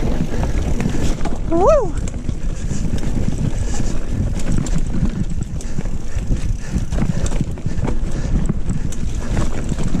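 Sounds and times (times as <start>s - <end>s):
mountain bike rattling on dirt trail: 0.0s - 10.0s
wind buffeting microphone: 0.0s - 10.0s.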